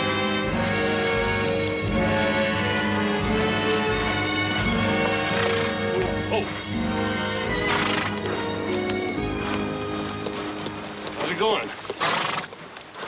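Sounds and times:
horse hooves on ground: 0.0s - 13.0s
western film music: 0.0s - 13.0s
horse whinny: 4.9s - 6.6s, 7.4s - 8.4s, 12.0s - 12.6s.

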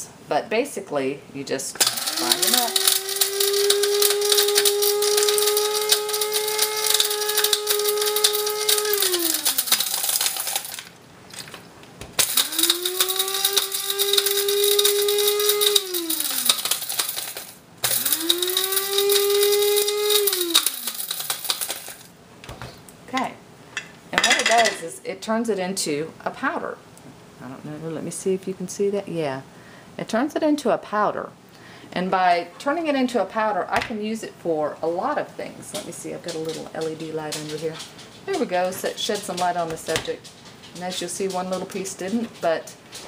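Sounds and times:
coffee grinder motor: 1.8s - 10.9s, 12.2s - 22.1s.

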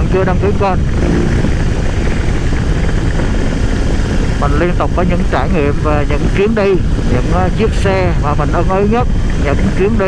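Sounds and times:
motorcycle engine running: 0.0s - 10.0s
wind rushing: 0.0s - 10.0s.

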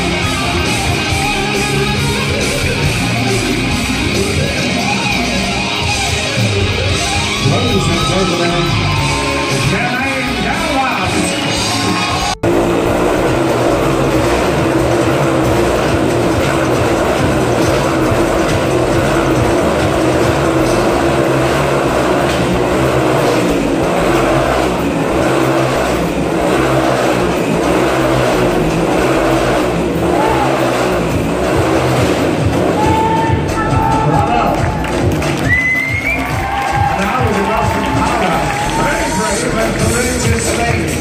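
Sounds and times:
motorcycle engines revving: 0.0s - 41.0s.

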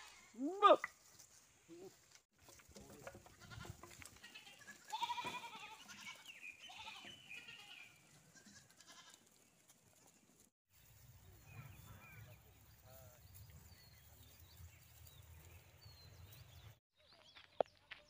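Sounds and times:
goats bleating: 3.3s - 9.3s.

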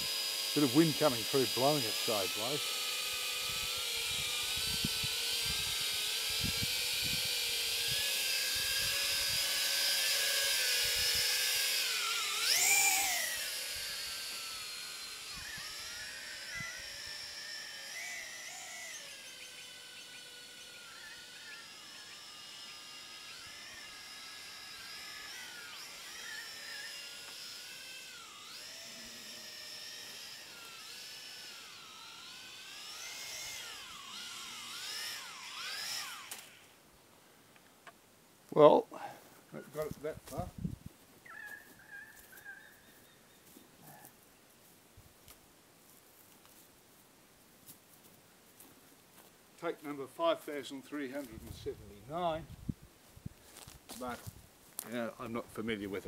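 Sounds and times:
toy drone motors whining: 0.0s - 36.8s, 39.6s - 44.2s.

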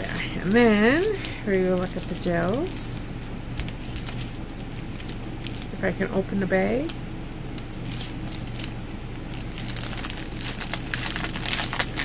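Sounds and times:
plastic packaging crinkling: 0.0s - 5.8s, 7.5s - 12.0s.

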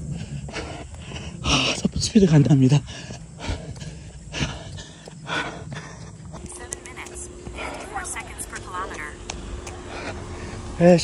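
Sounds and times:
runner panting heavily: 0.0s - 8.3s.

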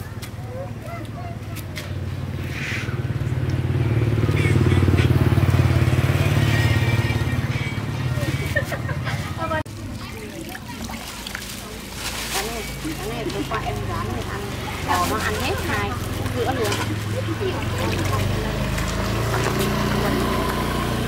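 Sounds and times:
motorbike engine passing: 1.8s - 9.6s, 12.5s - 21.0s.

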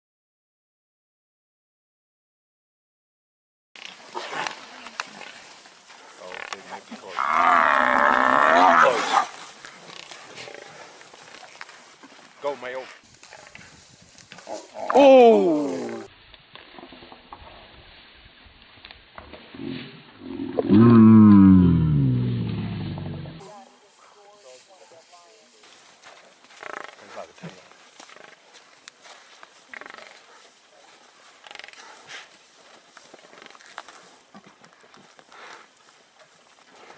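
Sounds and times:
lions growling faintly: 8.0s - 11.5s.

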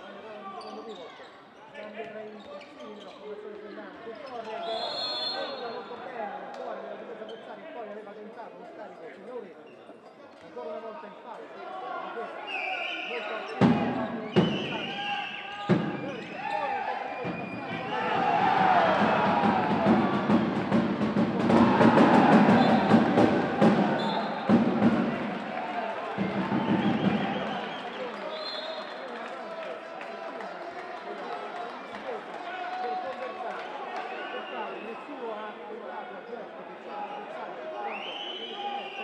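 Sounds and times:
crowd shouting: 15.3s - 27.9s.

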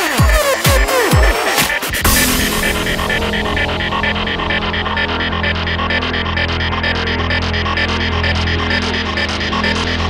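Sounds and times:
pulsing synth pattern: 1.9s - 10.0s
low bass drone: 2.0s - 9.0s.

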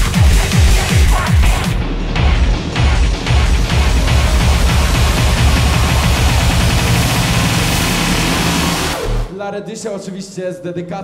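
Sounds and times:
bass-heavy club dance music: 0.0s - 9.3s
hissing noise sweep: 4.4s - 9.3s.

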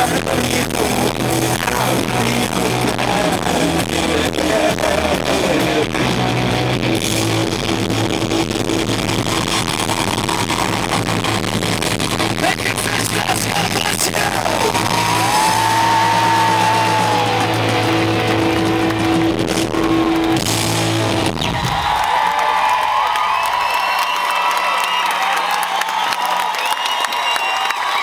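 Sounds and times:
live rock band chord: 0.0s - 21.4s
crowd cheering: 8.7s - 28.0s
crowd whooping and whistling: 13.7s - 20.4s, 21.1s - 28.0s.

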